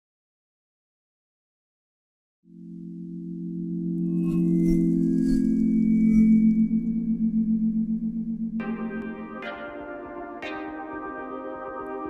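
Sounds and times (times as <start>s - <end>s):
low synthesizer chord: 2.5s - 12.0s
faint high steady tones: 4.0s - 9.9s.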